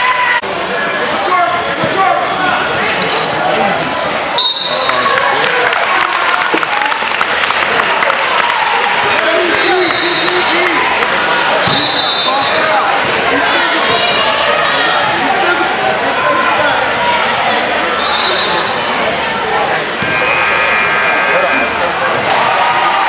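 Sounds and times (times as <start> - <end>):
crowd and players' voices: 0.0 - 23.0.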